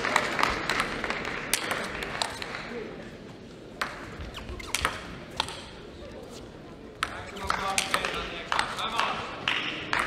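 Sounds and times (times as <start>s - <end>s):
crowd noise: 0.0s - 10.0s
table tennis ball clicks: 7.0s - 9.1s.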